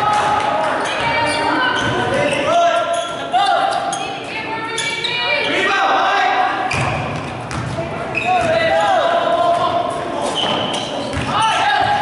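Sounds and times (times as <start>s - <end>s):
people shouting in a hall: 0.0s - 7.2s, 7.8s - 12.0s
sneakers squeaking on floor: 0.1s - 5.7s, 6.6s - 12.0s
basketball bouncing on court: 6.7s - 8.8s, 11.1s - 12.0s.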